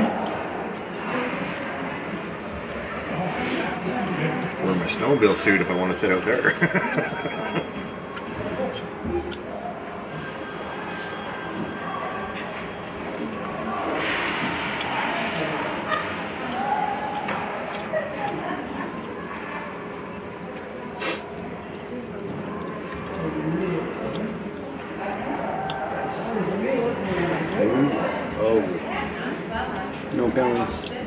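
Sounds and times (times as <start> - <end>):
murmur of distant voices: 0.0 - 31.0.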